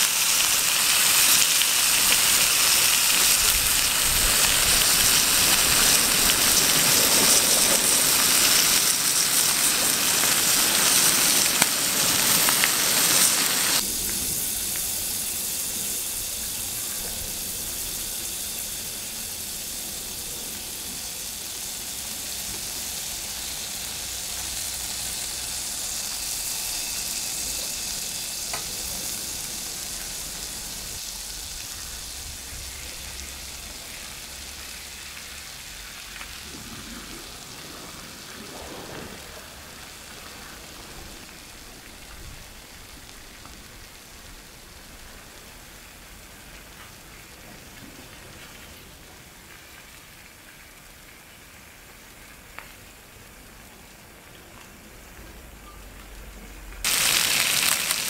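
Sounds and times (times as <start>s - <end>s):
fish sizzling on hot plate: 0.0s - 36.4s, 56.8s - 58.0s.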